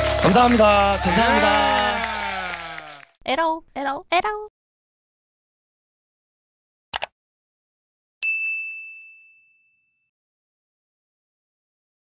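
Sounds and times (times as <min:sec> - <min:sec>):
bright bell ding: 0:08.2 - 0:10.1.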